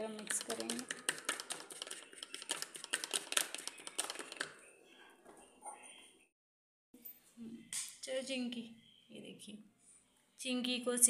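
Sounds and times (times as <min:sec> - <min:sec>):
spoon tapping plastic bowl: 0:00.1 - 0:04.5.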